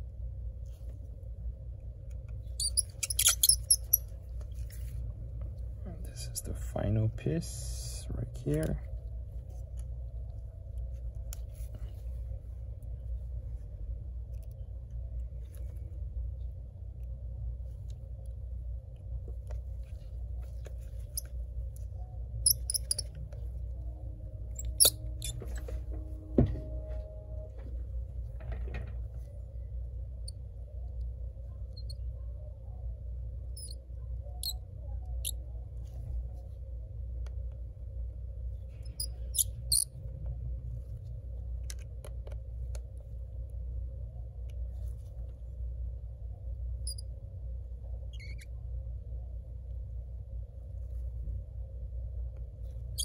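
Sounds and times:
steady low hum: 0.0 - 53.0
screwdriver squeaks and ticks: 2.5 - 4.1, 22.4 - 23.2, 24.6 - 25.6, 33.6 - 33.8, 38.7 - 39.9, 46.8 - 47.0, 48.1 - 48.6.

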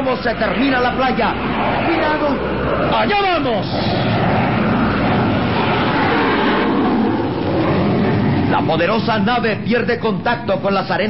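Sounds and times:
jet engines at full power: 0.0 - 11.0.

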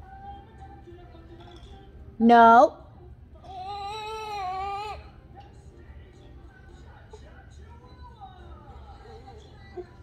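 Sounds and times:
baby wailing: 3.4 - 5.2.

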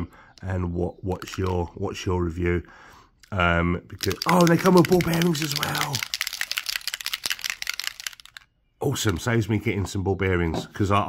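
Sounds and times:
mixing balls rattling in paint bottles: 0.9 - 2.0, 3.2 - 9.4.

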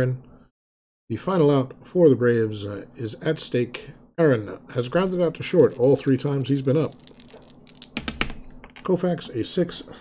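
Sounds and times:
dice clattering on tabletop: 5.0 - 8.9.

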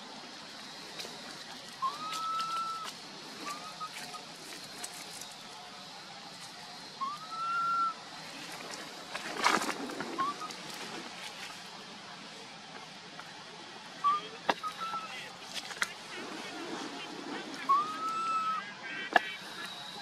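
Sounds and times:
infant monkey cooing: 1.8 - 4.3, 7.0 - 8.0, 10.2 - 10.6, 14.0 - 15.3, 16.4 - 20.0
monkey chirps: 1.8 - 4.3, 14.0 - 15.2.

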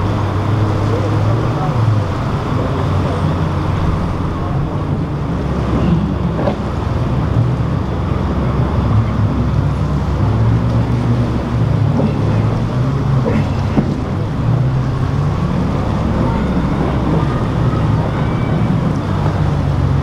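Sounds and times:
powerboat engines humming: 0.0 - 20.0
water wash: 0.0 - 20.0
wind buffeting microphone: 0.0 - 20.0.

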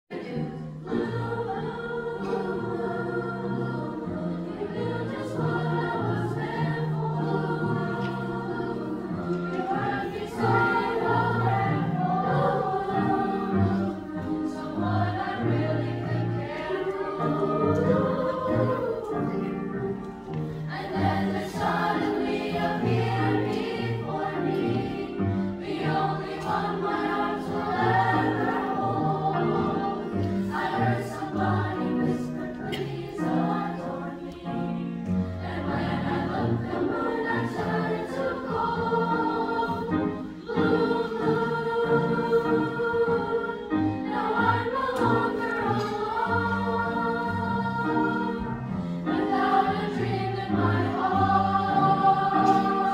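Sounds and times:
choir singing: 0.1 - 52.9
piano accompaniment: 0.1 - 52.9.

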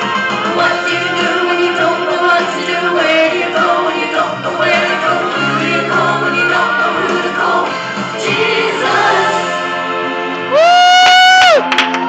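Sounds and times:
musical accompaniment: 0.0 - 12.0
sharp claps: 11.0 - 12.0.

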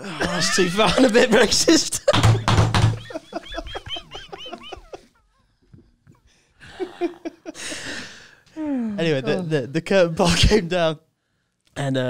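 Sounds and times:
high-pitched laughter: 0.0 - 5.4.

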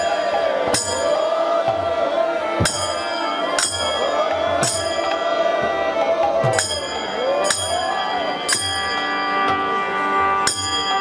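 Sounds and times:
metallic cymbal clashes: 0.0 - 1.3, 2.6 - 5.3, 6.4 - 9.5, 10.4 - 11.0
soft drum beats: 0.0 - 9.8
harmonium and violin: 0.0 - 11.0.

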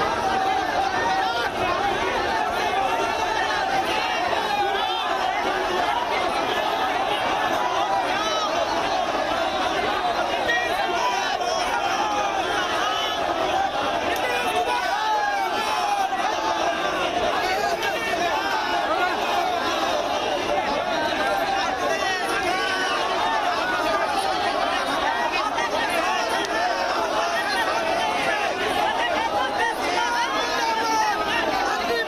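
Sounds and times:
crowd of protesters shouting: 0.0 - 32.0.

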